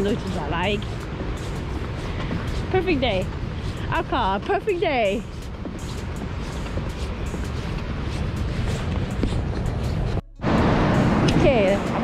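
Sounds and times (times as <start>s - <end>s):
ocean surf breaking: 5.8s - 12.0s.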